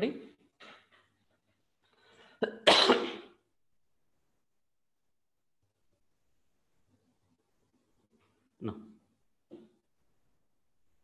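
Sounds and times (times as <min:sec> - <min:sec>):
man coughing: 0:02.4 - 0:03.4.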